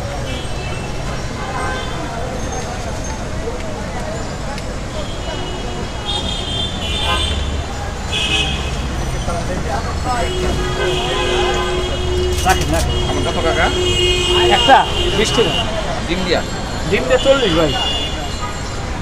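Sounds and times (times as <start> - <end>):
vehicle horns: 0.0 - 2.4, 4.9 - 19.0
chatter of voices: 0.0 - 19.0
city street traffic: 0.0 - 19.0.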